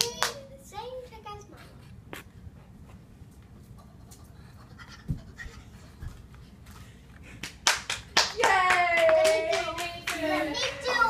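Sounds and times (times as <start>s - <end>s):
hand claps: 0.0s - 0.4s, 7.4s - 10.8s.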